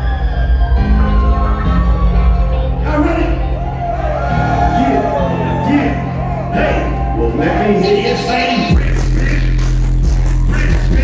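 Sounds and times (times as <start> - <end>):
deep sliding bass line: 0.0 - 11.0
hip hop beat through pa: 6.8 - 11.0.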